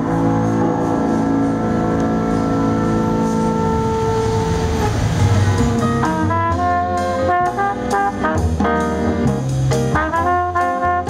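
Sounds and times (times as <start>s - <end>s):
band holding a long note: 0.0s - 11.0s.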